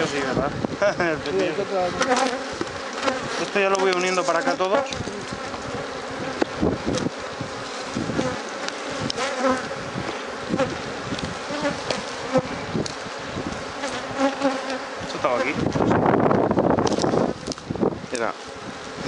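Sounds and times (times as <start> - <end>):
honeybees buzzing: 0.0 - 19.0.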